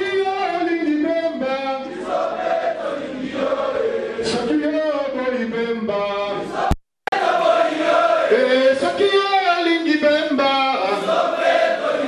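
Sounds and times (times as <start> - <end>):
voices singing a chant: 1.8 - 4.5, 6.4 - 8.9, 10.8 - 12.0.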